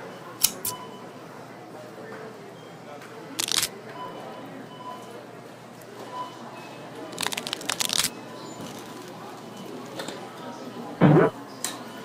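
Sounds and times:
scissor snips: 0.4 - 0.7.

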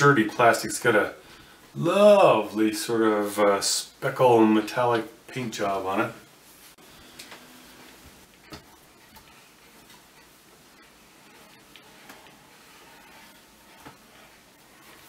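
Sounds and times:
soft rubs on plastic tube: 10.8 - 15.0.

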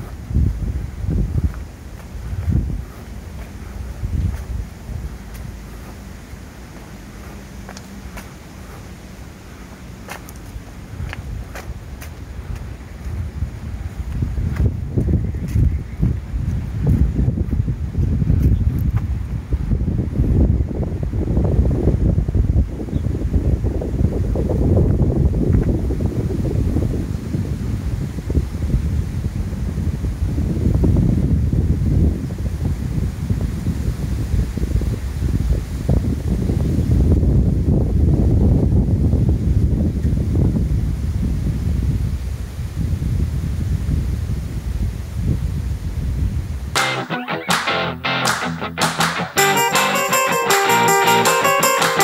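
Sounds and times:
wind buffeting microphone: 0.0 - 46.8.

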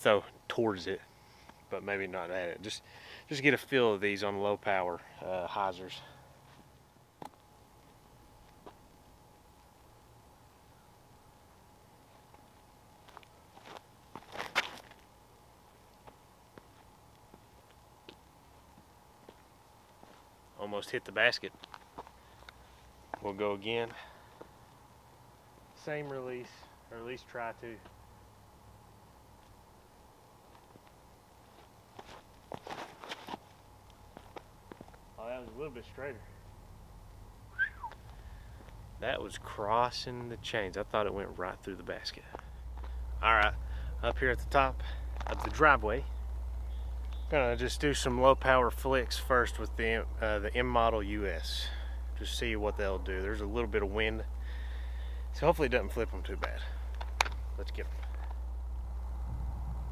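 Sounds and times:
faint steady tone: 0.0 - 14.1, 33.5 - 59.9
faint outdoor background: 0.0 - 59.9
footsteps on pavement: 6.4 - 8.8, 12.1 - 15.1, 15.8 - 20.3, 21.5 - 24.6, 30.5 - 35.6, 37.9 - 38.8, 42.2 - 43.6
shoes scuffing on pavement: 6.4 - 8.8, 12.1 - 15.1, 16.0 - 18.2, 19.2 - 20.3, 30.5 - 35.0.

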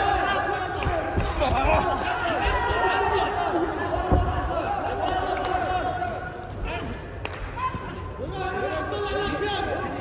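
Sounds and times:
voices talking in a hall: 0.0 - 10.0.

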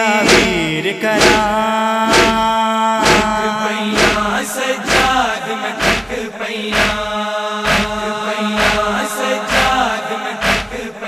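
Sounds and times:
chest-beating strikes: 0.0 - 5.2, 5.8 - 6.2
man chanting a lament: 0.0 - 11.0.

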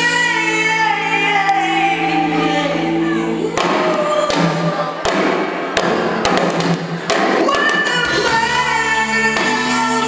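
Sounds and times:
live band playing: 0.0 - 10.0
drum and cymbal hits: 3.6 - 8.4.

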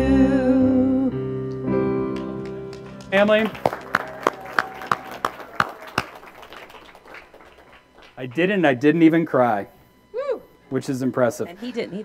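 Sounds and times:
sharp hand claps: 1.5 - 8.4.

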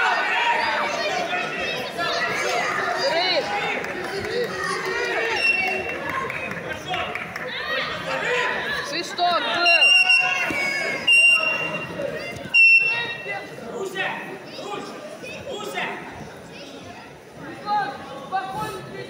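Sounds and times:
echoing chatter and calls: 0.0 - 19.0
referee's whistle blasts: 9.6 - 11.9, 12.5 - 13.3.

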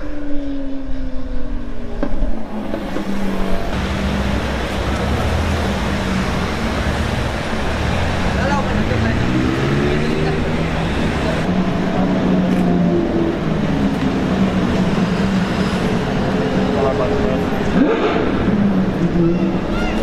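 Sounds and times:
car and bus engines humming: 0.0 - 20.0
people talking: 3.8 - 12.2, 16.6 - 17.6.

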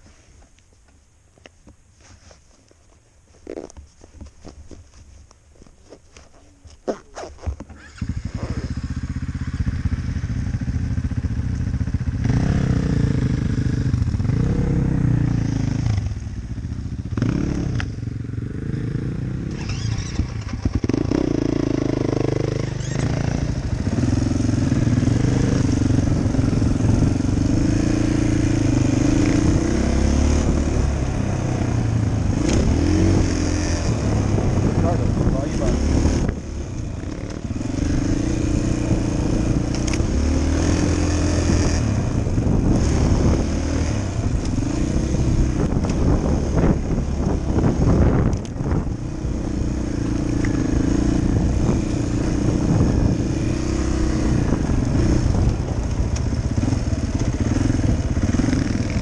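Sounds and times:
dirt bike engine running: 7.6 - 59.0.

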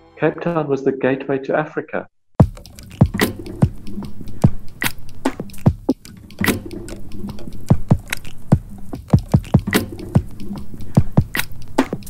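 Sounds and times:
percussion music with deep drums: 2.4 - 12.0.

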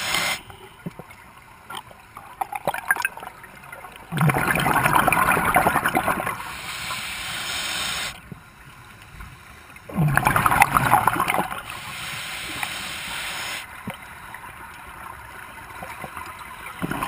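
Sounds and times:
soft steady hiss: 4.8 - 17.0.

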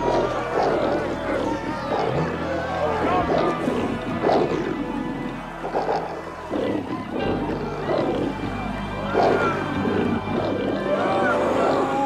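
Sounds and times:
dramatic soundtrack music: 0.0 - 12.0
snarling roaring growls: 0.0 - 12.0.

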